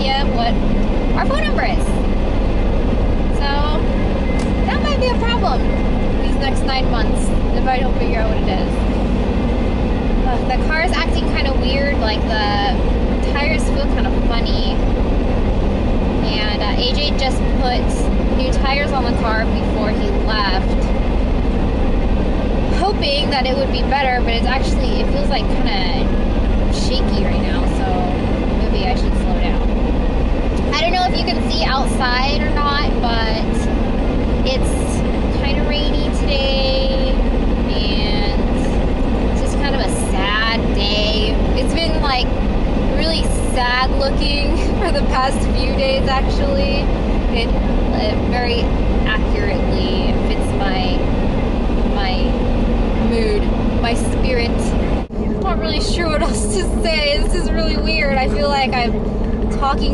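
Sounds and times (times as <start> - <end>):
woman talking: 0.0 - 2.0, 3.3 - 8.9, 10.2 - 14.8, 16.2 - 20.9, 22.7 - 29.7, 30.6 - 33.7, 34.4 - 38.8, 39.4 - 51.1, 51.9 - 52.4, 53.0 - 59.9
car road and engine noise: 0.0 - 59.9.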